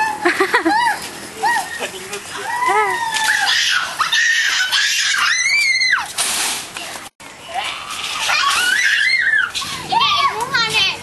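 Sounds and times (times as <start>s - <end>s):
high-pitched human screaming: 2.4s - 6.0s.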